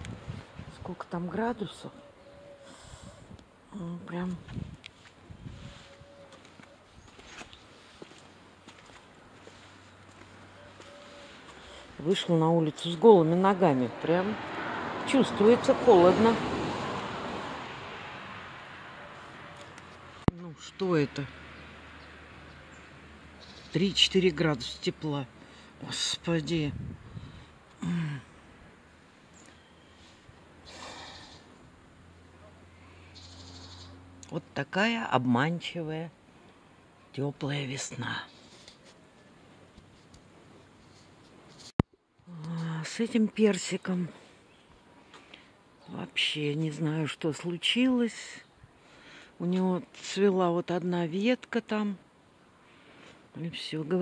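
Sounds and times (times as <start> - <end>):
footsteps on paved path: 4.3 - 11.8.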